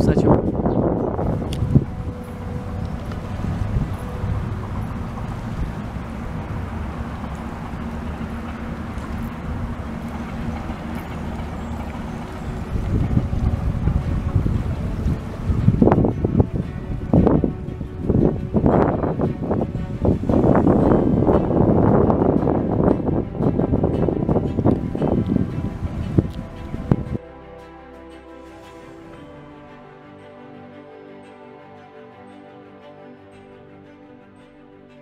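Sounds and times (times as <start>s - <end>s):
wind rumbling on microphone: 0.0s - 27.2s
faint steady hum: 0.6s - 27.2s.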